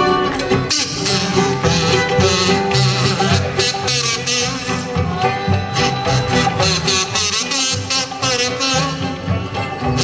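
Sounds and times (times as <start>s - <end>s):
banjo: 0.0s - 10.0s
fiddle: 0.0s - 10.0s
guitars strumming and picking: 0.0s - 10.0s.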